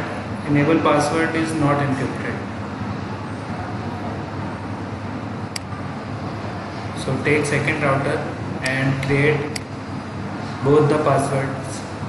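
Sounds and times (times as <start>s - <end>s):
low rumble with hiss: 0.0s - 12.0s.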